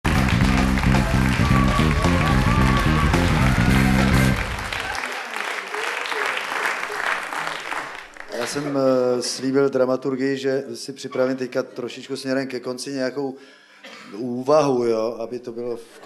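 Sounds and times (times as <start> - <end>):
theme music with heavy bass: 0.0 - 4.8
audience applauding: 0.0 - 8.8.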